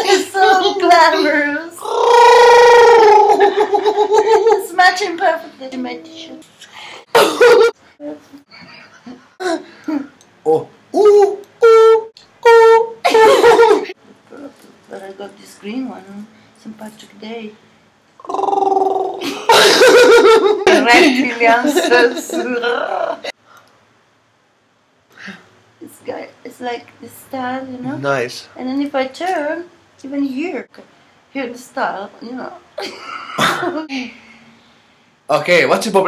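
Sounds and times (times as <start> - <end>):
person croaking throat sound: 1.8 - 3.5, 18.2 - 19.3
person's high drawn-out ooh: 1.8 - 3.5
person laughing: 2.2 - 4.6, 7.1 - 10.1, 13.0 - 13.9, 19.0 - 22.4.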